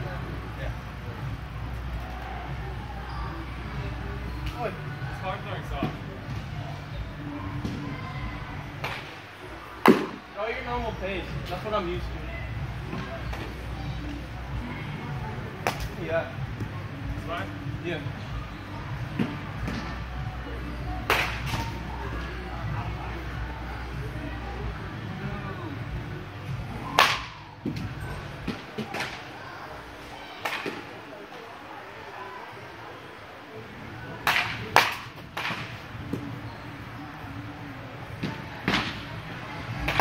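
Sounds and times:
ball striking cage: 9.8s - 10.2s, 21.0s - 21.8s, 26.8s - 29.3s, 34.2s - 36.3s
wooden bat hitting ball: 9.8s - 10.2s, 26.9s - 27.8s, 34.2s - 36.2s.

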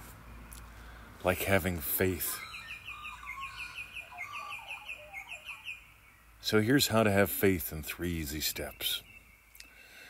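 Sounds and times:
soft low bird calls: 0.0s - 10.0s
bird chirping rapidly: 1.7s - 6.9s.

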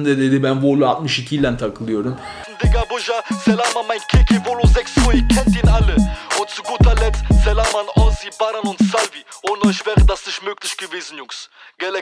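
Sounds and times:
rapping over a beat: 2.4s - 12.0s.

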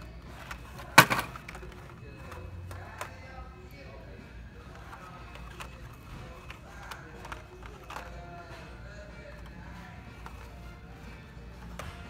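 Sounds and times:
plastic blister packs clacking: 0.0s - 3.9s, 4.5s - 12.0s.

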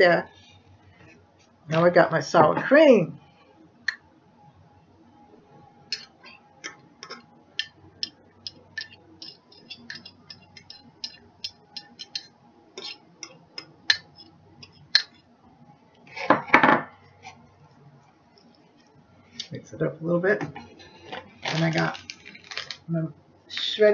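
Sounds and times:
utensil clicking against dish: 7.0s - 15.1s
utensil clattering and scraping dish: 8.8s - 11.2s.

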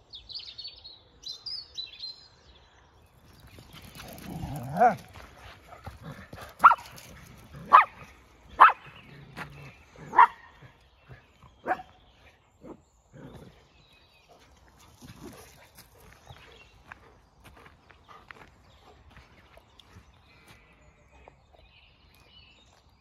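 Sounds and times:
dog barking: 6.6s - 6.9s, 7.6s - 8.0s, 8.6s - 8.9s, 10.0s - 10.5s, 11.6s - 11.9s.

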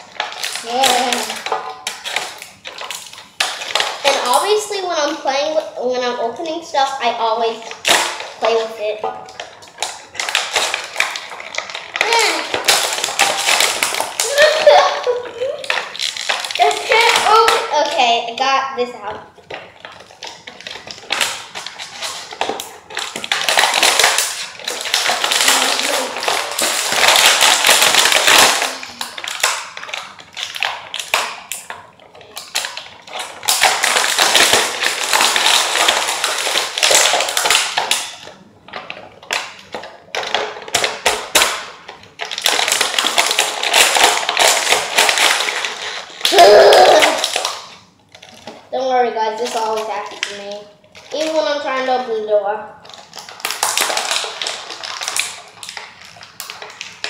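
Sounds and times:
plastic packaging crinkling: 0.0s - 57.0s.

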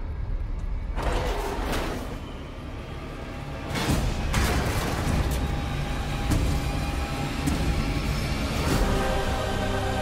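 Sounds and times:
sustained film music: 0.0s - 10.0s.

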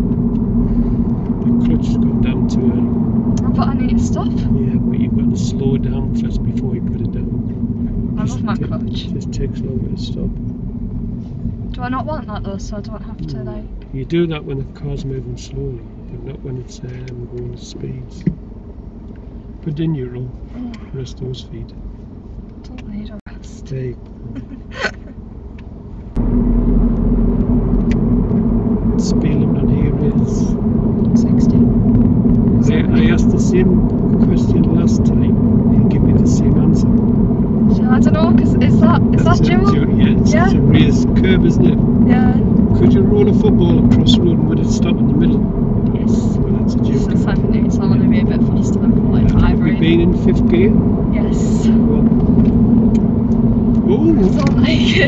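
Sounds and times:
road and engine rumble in car: 0.0s - 55.0s.

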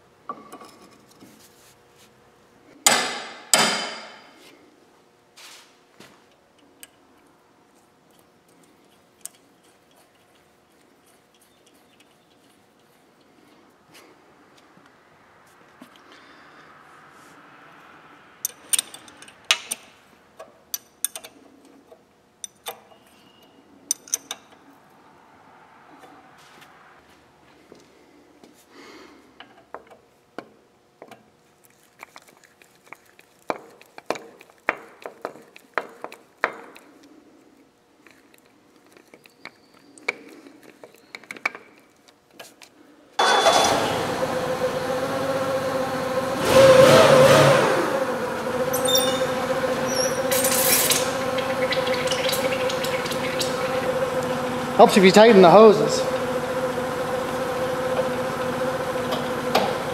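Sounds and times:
forklift engine running: 43.2s - 59.9s.

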